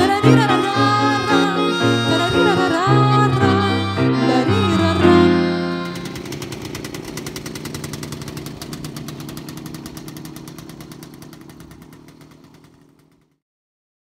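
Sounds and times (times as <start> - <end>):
low motor hum: 0.0 - 12.4
film projector clattering: 5.7 - 13.4.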